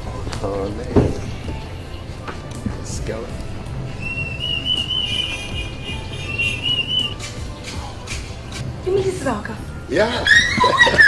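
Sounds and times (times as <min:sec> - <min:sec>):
background music: 0:00.0 - 0:11.0
high wavering whistle: 0:03.9 - 0:07.6.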